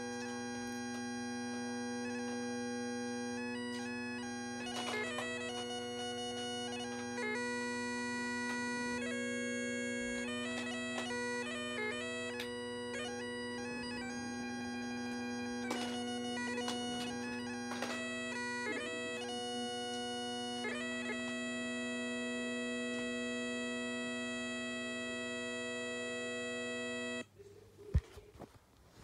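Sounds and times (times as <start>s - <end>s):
bagpipes playing: 0.0s - 27.2s
handling noise: 4.6s - 6.0s, 13.7s - 18.2s.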